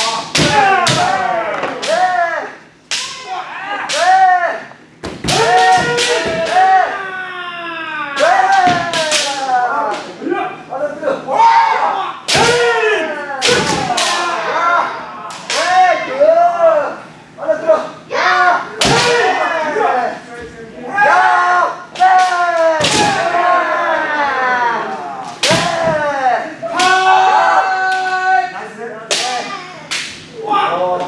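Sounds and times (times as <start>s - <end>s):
fencers shouting: 0.0s - 10.6s, 11.3s - 17.0s, 17.6s - 29.6s.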